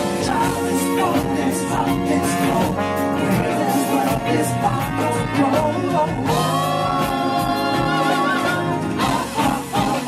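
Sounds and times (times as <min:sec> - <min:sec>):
live band playing: 0:00.0 - 0:10.0
singers holding harmonized note: 0:00.0 - 0:10.0.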